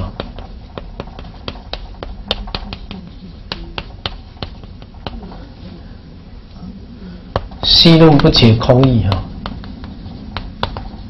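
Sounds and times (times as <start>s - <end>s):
chalk tapping on chalkboard: 0.0s - 5.4s, 7.3s - 11.0s.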